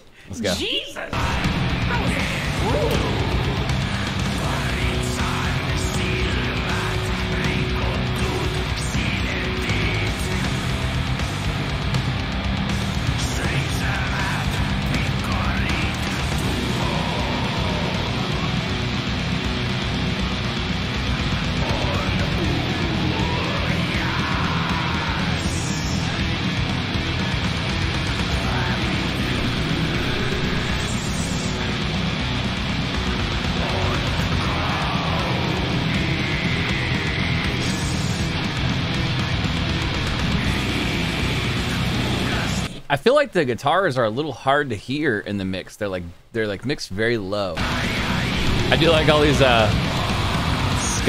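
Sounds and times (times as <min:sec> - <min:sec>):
harsh vocals: 0:00.0 - 0:51.0
distorted metal music: 0:00.6 - 0:43.2, 0:47.6 - 0:51.0.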